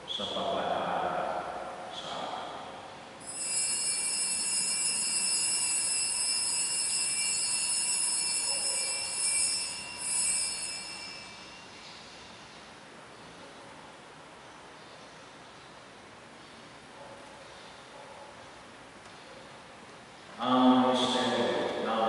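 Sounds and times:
altar bells ringing: 3.2 - 12.4.

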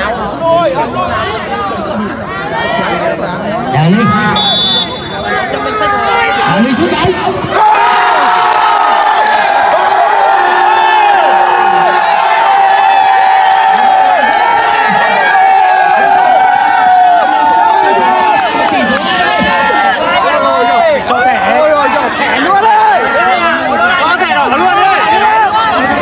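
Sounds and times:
crowd cheering and shouting: 0.0 - 26.0.

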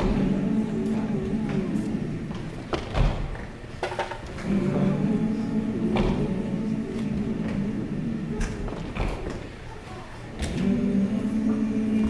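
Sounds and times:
wordless vocal harmony: 0.0 - 12.0.

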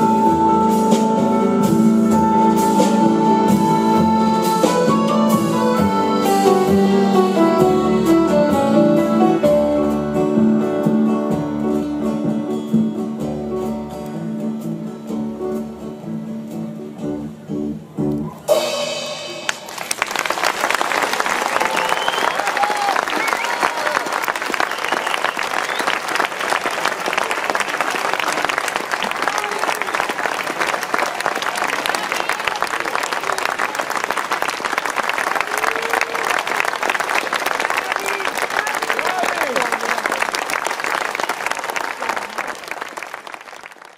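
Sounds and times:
audience clapping: 19.4 - 43.9.

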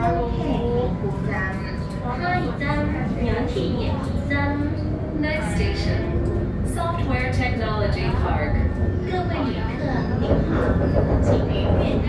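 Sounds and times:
tram rumble: 0.0 - 12.0
woman speaking: 1.6 - 10.6, 11.2 - 12.0.

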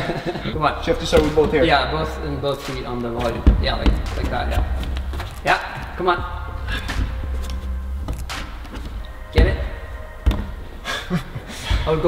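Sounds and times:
dull thuds against climbing wall: 0.9 - 10.8.

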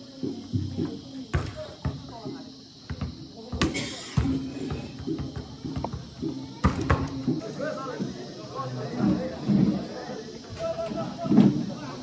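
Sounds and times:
voices of players and onlookers: 0.0 - 12.0.

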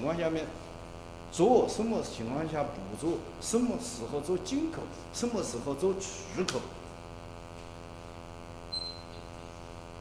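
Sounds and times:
electrical mains hum: 0.0 - 10.0
short high beep: 8.7 - 9.2.

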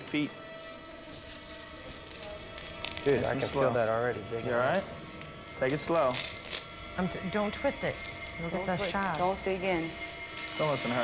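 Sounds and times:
faint background music: 0.0 - 11.0
glass shards crunching underfoot: 0.6 - 11.0.

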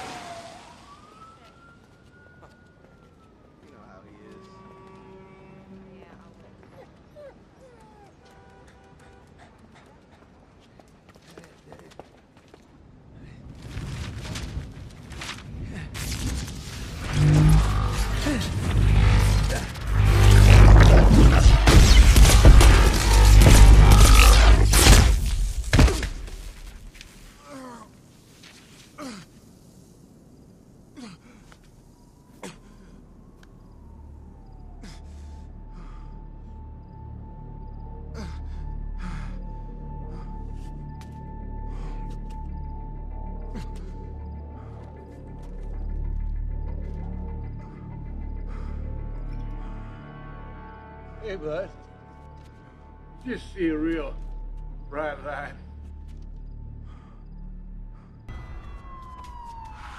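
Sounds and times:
dog whimpering: 6.7 - 8.2
low steady drone: 16.3 - 25.6.

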